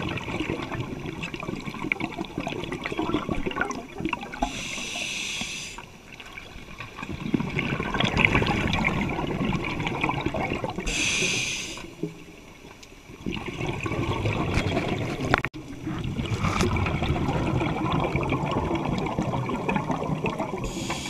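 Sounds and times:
bubbles rumbling and gurgling: 0.0 - 4.8, 5.9 - 11.1, 11.9 - 21.0
regulator hissing inhale: 4.4 - 5.9, 10.8 - 11.9, 20.6 - 21.0.

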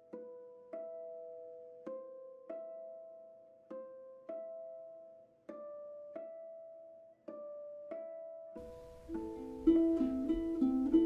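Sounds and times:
harp plucking chords: 0.0 - 11.0.

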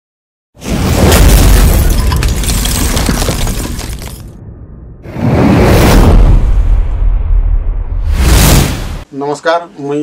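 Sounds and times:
shattering debris crackling: 0.9 - 4.3.

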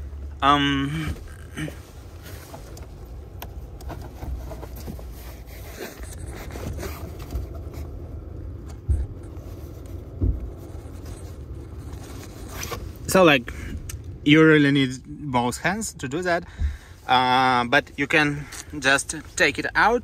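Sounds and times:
fingers scraping air filter: 1.0 - 8.1.

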